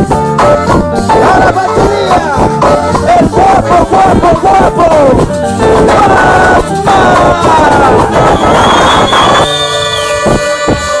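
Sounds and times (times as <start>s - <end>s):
crowd noise: 0.0s - 11.0s
live band playing distorted: 0.0s - 11.0s.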